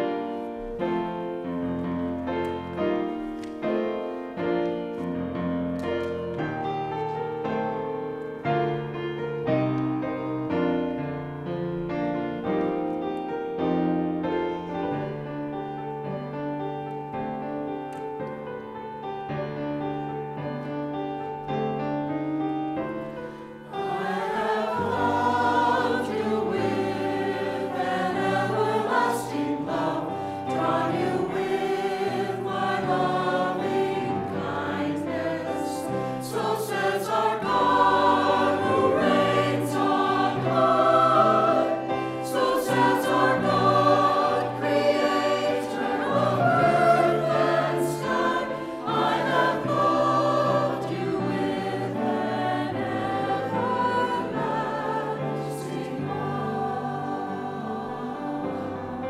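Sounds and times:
church choir singing in harmony: 0.0s - 59.0s.

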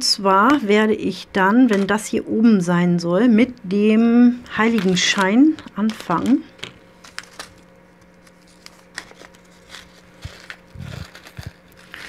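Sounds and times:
plastic bags crinkling: 4.4s - 12.0s.

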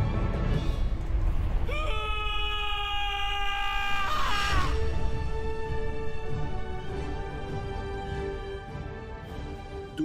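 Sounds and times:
person screaming: 1.7s - 4.8s.

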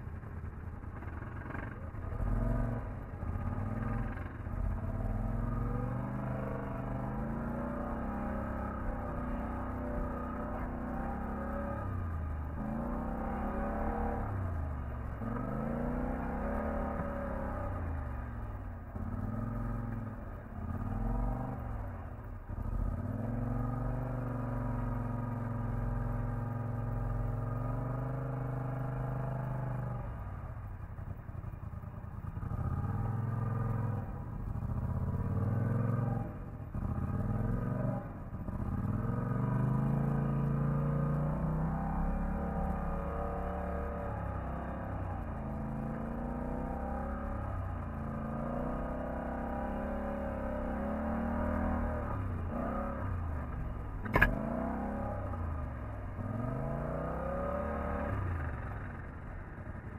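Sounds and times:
atv engine revving: 0.8s - 18.3s, 18.9s - 30.3s, 32.2s - 59.9s.

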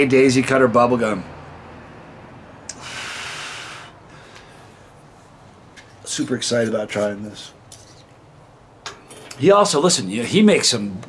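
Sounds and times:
breath through the nose: 2.7s - 4.9s.

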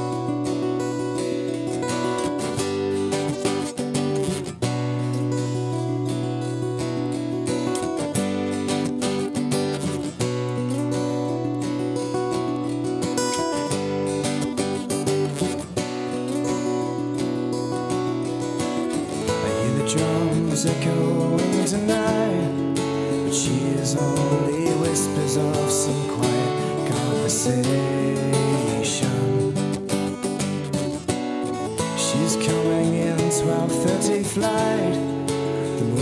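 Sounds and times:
acoustic guitar strumming chords: 0.0s - 36.0s.

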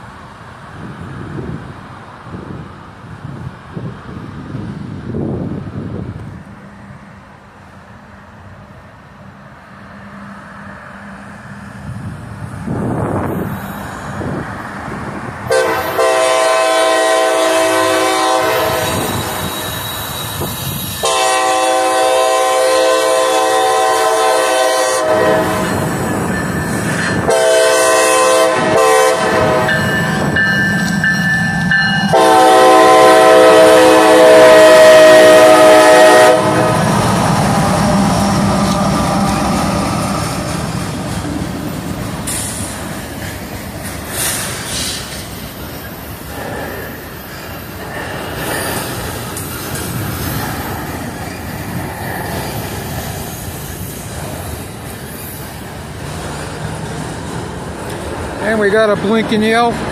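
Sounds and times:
train cars rumbling and rattling: 0.0s - 59.9s
train air horn blasts: 15.5s - 25.9s, 27.2s - 30.2s, 31.7s - 36.9s.

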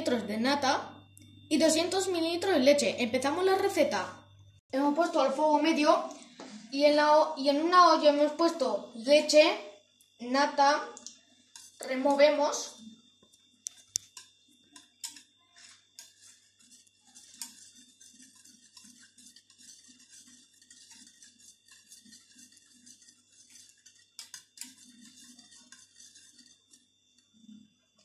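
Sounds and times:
whisk clicking in metal saucepan: 11.0s - 12.2s, 13.6s - 27.3s.

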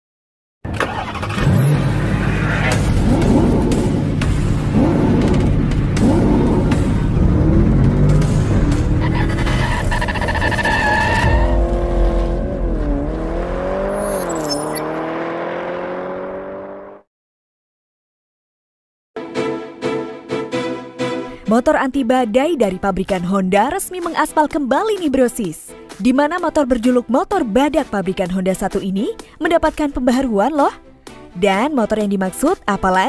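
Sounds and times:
engine revving: 0.7s - 17.1s
intro music: 1.5s - 10.3s.

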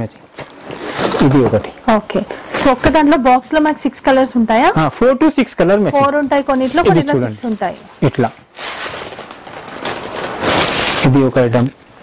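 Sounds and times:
fabric rustling: 0.4s - 1.8s, 5.9s - 11.6s.

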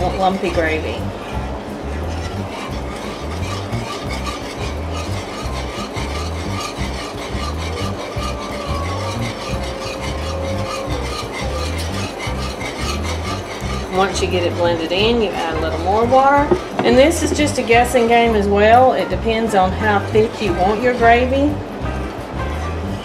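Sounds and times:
metal whisk scraping a skillet: 0.0s - 1.0s, 2.1s - 21.4s
background music: 0.0s - 23.0s.

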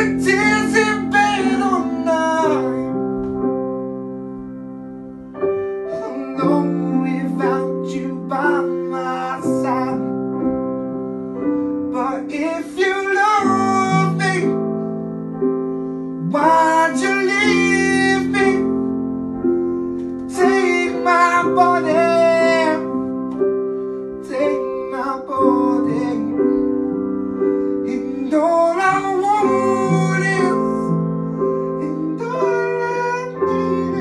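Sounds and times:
man singing a ballad: 0.0s - 3.6s, 5.8s - 14.8s, 16.2s - 23.4s, 24.1s - 34.0s
piano backing track: 0.0s - 34.0s.

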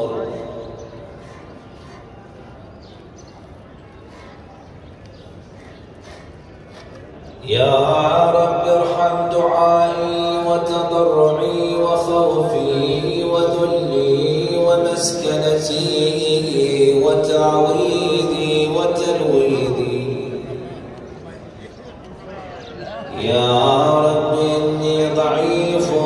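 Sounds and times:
man chanting a prayer: 0.0s - 1.1s, 7.4s - 20.9s, 23.0s - 26.0s.

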